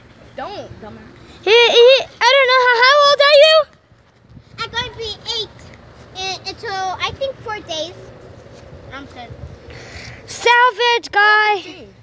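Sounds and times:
child yelling: 1.5s - 3.7s, 4.6s - 5.6s.

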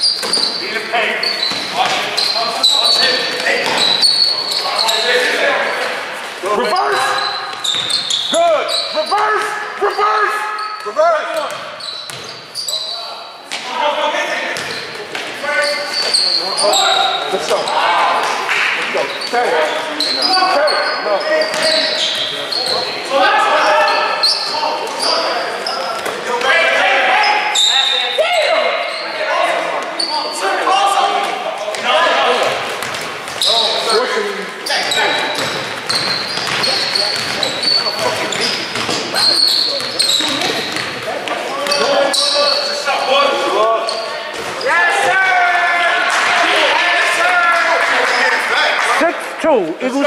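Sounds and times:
basketball bouncing on court: 0.0s - 0.6s, 7.5s - 8.1s, 11.4s - 12.4s, 14.5s - 15.2s, 21.5s - 21.8s, 32.4s - 33.5s, 34.8s - 41.8s
sneaker squeaks: 0.0s - 13.7s, 14.4s - 18.1s, 18.7s - 45.0s
players shouting: 15.4s - 32.7s, 41.4s - 50.0s.

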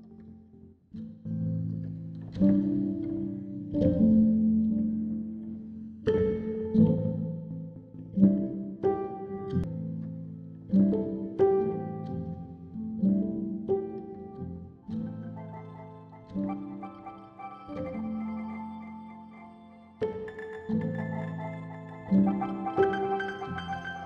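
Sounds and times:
granular synthesizer notes: 14.9s - 24.0s.

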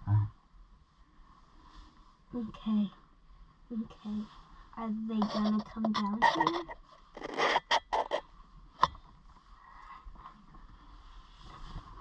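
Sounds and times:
scraping rustling noises: 4.0s - 8.3s, 9.3s - 12.0s.

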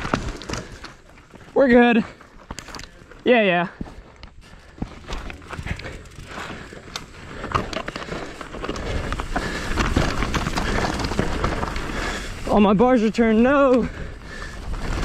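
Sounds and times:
bike rattling: 0.0s - 15.0s
bike tyres on dirt and rock: 0.0s - 15.0s
wind and ground rumble: 0.0s - 15.0s.

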